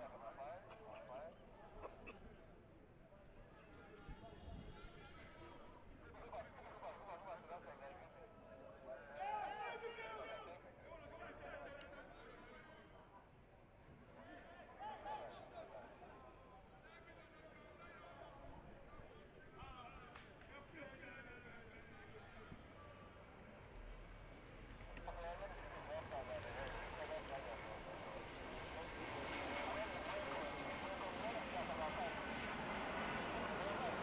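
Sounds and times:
steady background noise: 8.9 - 34.0.

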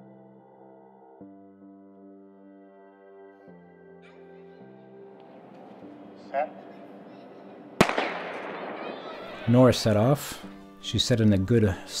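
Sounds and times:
starting pistol shot with echo: 7.8 - 9.5.

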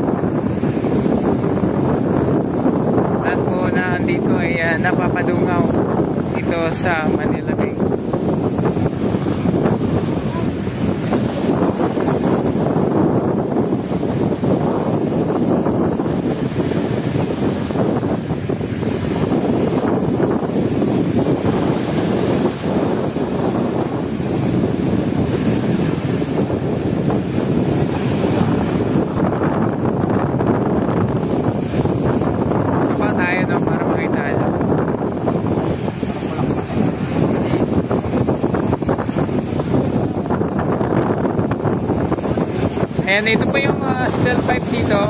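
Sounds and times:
waves breaking on rocks: 0.0 - 45.0
wind buffeting microphone: 0.0 - 45.0.

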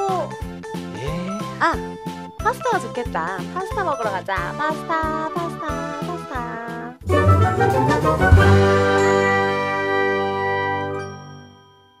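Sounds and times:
bell-like chime: 8.6 - 12.0.

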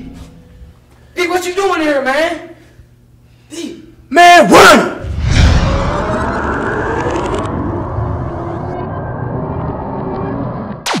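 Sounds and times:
deep boom: 5.0 - 9.0
long rumbling tail: 5.0 - 10.8
whoosh: 5.0 - 11.0.

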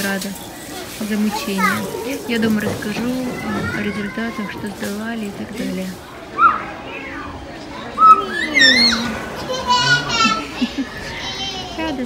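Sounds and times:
children playing and calling out: 0.5 - 12.0
children shouting: 3.0 - 4.9, 6.1 - 12.0
high-pitched child squeals: 6.4 - 7.2.

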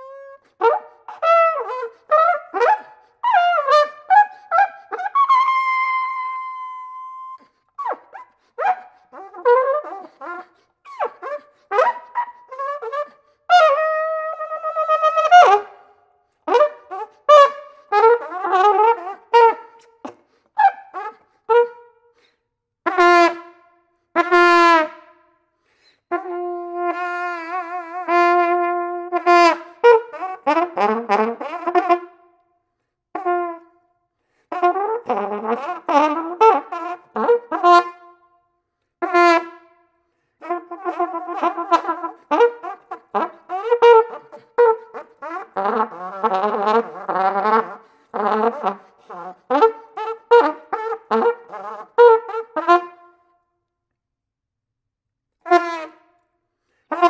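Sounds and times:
flugelhorn playing: 0.0 - 15.8, 26.1 - 32.1, 34.5 - 38.2, 40.4 - 53.2, 55.4 - 56.0.

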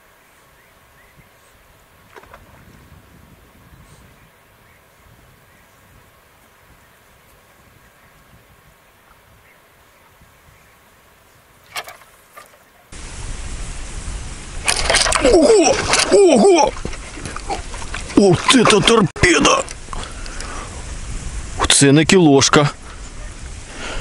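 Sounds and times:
wind rumble: 0.8 - 12.3, 13.0 - 24.0
fish splash: 14.6 - 17.8
handling noise: 14.6 - 19.0
man's excited cries: 15.2 - 16.8.

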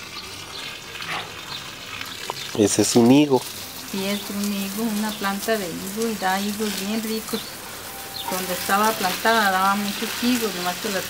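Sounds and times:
water spraying from hose: 0.0 - 11.0.

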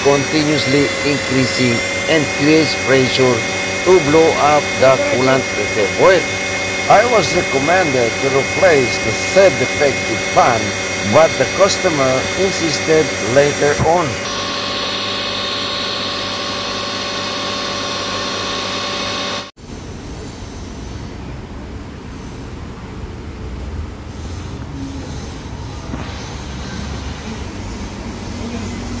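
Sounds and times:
car engine whining: 0.0 - 19.5
rough engine running: 0.0 - 19.5.

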